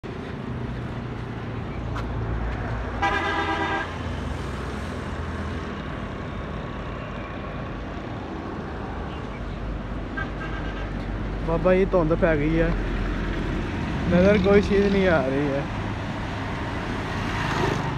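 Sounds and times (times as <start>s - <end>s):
road traffic rumble: 0.0s - 17.9s
vehicle horn: 3.0s - 3.9s.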